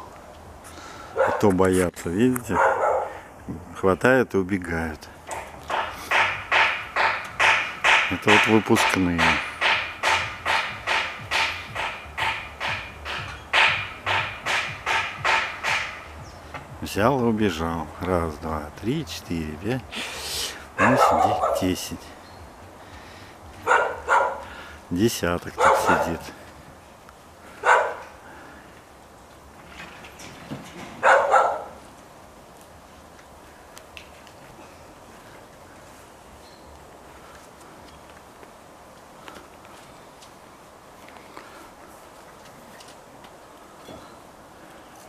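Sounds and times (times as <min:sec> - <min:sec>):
foxes barking: 0:01.1 - 0:01.5, 0:02.5 - 0:03.3, 0:20.7 - 0:21.8, 0:23.6 - 0:24.7, 0:25.5 - 0:26.4, 0:27.5 - 0:28.3, 0:31.0 - 0:31.9
rhythmic crunching: 0:05.3 - 0:17.0.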